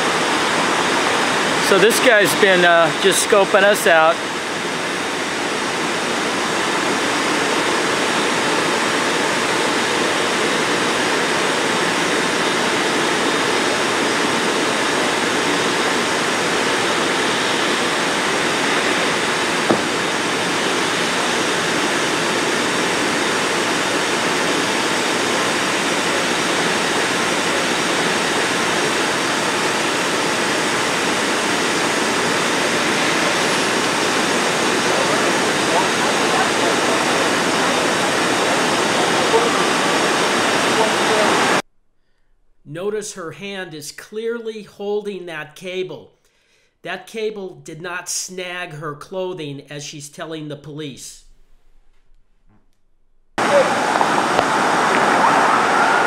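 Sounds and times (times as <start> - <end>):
steady rushing noise: 0.0 - 41.6, 53.4 - 56.0.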